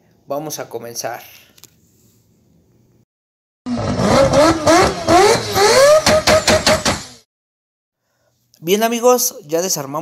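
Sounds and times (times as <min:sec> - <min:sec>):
engine revving: 0:03.7 - 0:07.2
sharp exhaust pops: 0:03.8 - 0:07.2.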